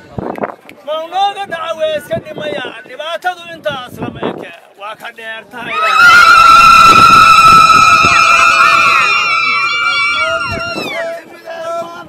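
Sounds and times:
women ululating: 5.7s - 11.0s.

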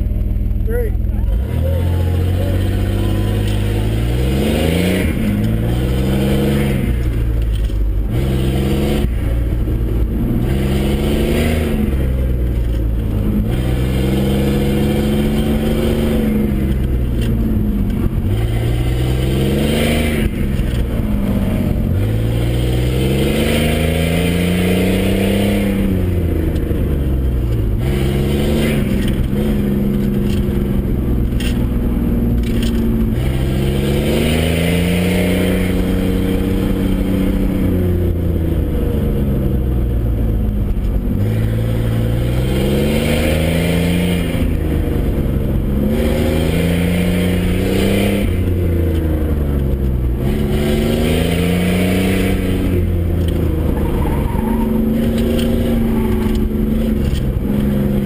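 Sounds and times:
truck engine revving: 0.0s - 58.0s.

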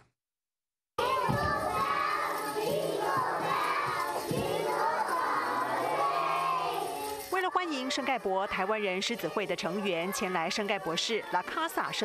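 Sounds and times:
young children singing together: 1.0s - 12.0s.

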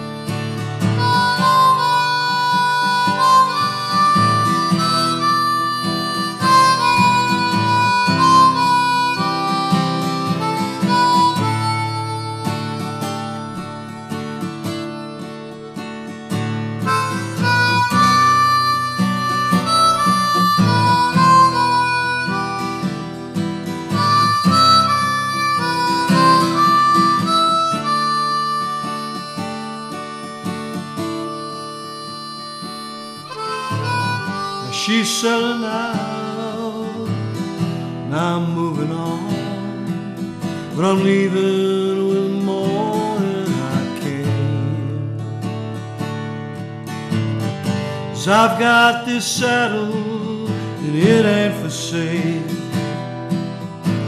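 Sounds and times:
acoustic guitar chords: 0.0s - 54.0s
harmonica melody: 0.0s - 54.0s.

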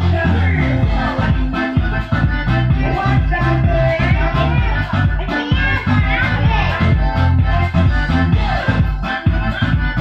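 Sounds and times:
upbeat dance music: 0.0s - 10.0s
children's voices: 2.8s - 7.1s.

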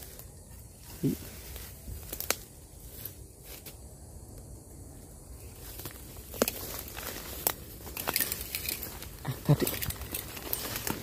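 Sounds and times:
dry leaves crackling underfoot: 0.0s - 11.0s.

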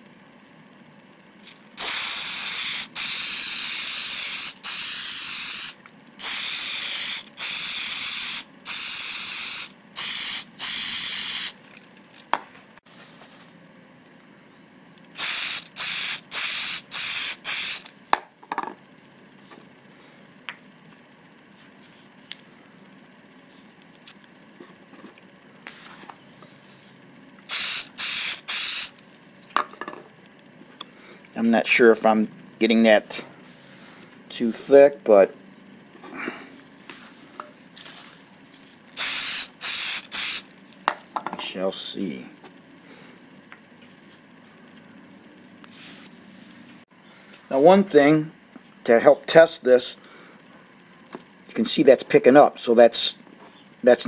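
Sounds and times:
aerosol can hissing bursts: 1.8s - 11.6s, 15.2s - 17.9s, 27.5s - 28.9s, 39.0s - 40.4s.

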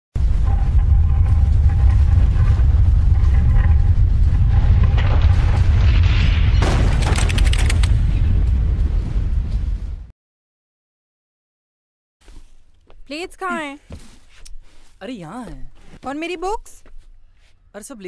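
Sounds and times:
burst of crackling: 0.2s - 9.7s
deep booming rumble: 0.2s - 10.1s.

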